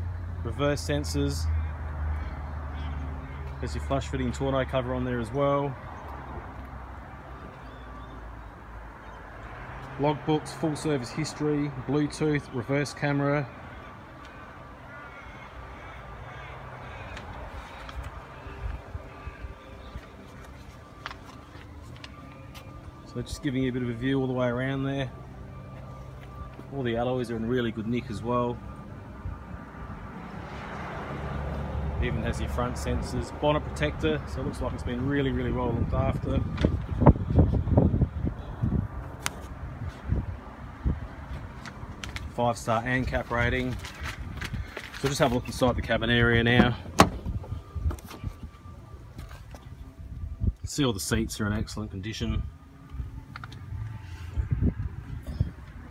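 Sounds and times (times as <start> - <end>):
faint distant calls: 13.4 - 27.0.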